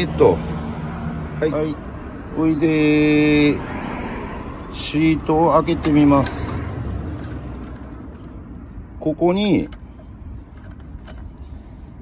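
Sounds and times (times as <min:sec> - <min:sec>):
key fitted into lock: 0:06.9 - 0:08.4, 0:10.4 - 0:11.6.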